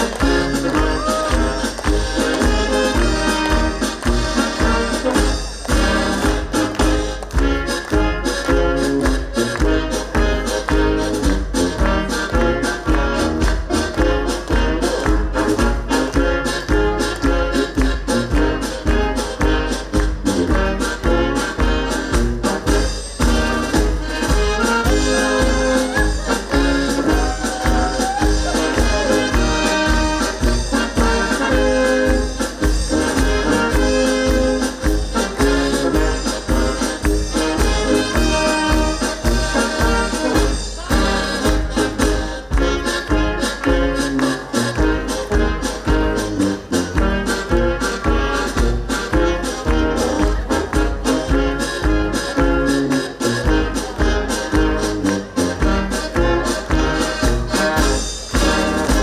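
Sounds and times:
brass band playing dance tune: 0:00.0 - 0:59.0
oom-pah bass beat: 0:00.0 - 0:59.0.

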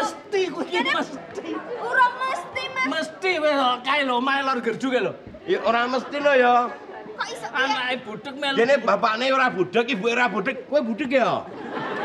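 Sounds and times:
people talking over each other: 0:00.0 - 0:12.0.

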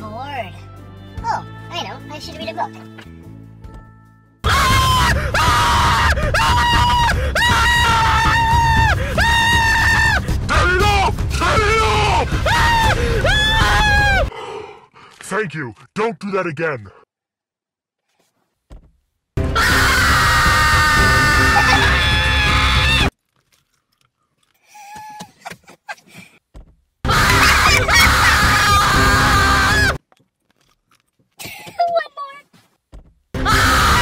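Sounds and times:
person screaming loudly: 0:04.4 - 0:14.3, 0:19.6 - 0:23.1, 0:27.1 - 0:30.0, 0:33.4 - 0:34.0.

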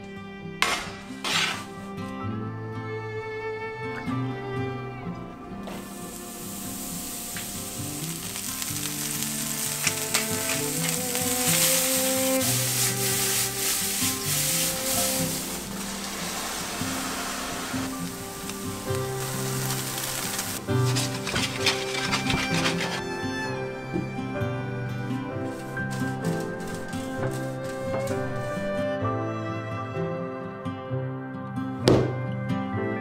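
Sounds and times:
mushrooms sizzling in a frying pan: 0:05.7 - 0:23.5
oil crackles and spatters: 0:05.7 - 0:23.5, 0:25.4 - 0:28.7.

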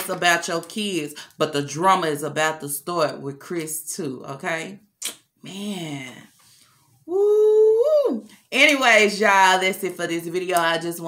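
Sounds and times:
woman talking: 0:00.0 - 0:04.8, 0:05.4 - 0:06.3, 0:07.1 - 0:11.0.

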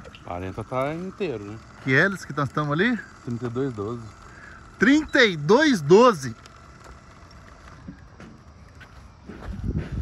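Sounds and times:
wind rumble on microphone: 0:09.3 - 0:10.0.

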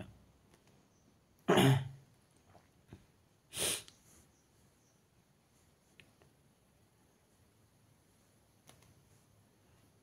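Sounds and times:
person coughing: 0:01.5 - 0:02.0.

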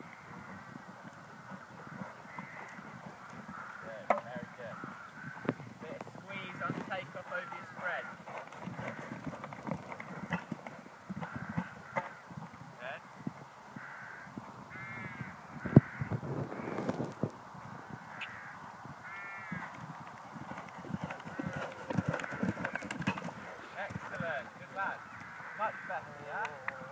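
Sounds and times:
horse hoofbeats on sand: 0:00.0 - 0:03.8, 0:04.7 - 0:12.6, 0:19.2 - 0:25.4
crows cawing: 0:00.0 - 0:05.7, 0:06.3 - 0:12.3, 0:13.1 - 0:17.0, 0:17.9 - 0:19.8, 0:20.5 - 0:26.9.

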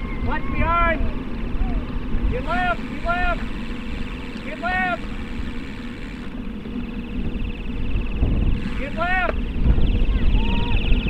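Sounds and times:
wind rushing over microphone: 0:00.0 - 0:11.0.

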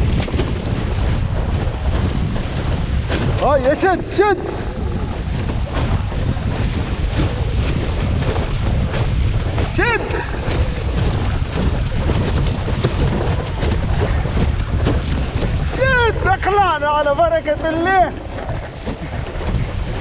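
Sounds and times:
water rushing along board hull: 0:00.0 - 0:20.0
wind buffeting microphone: 0:00.0 - 0:20.0.

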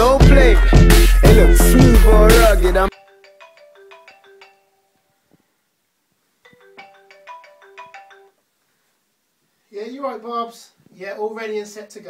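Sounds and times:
phone ringtone melody: 0:01.7 - 0:05.0, 0:06.5 - 0:08.4.

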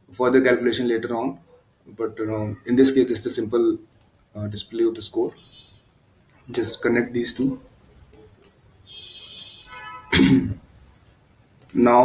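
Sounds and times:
man clearing throat: 0:10.1 - 0:10.6.

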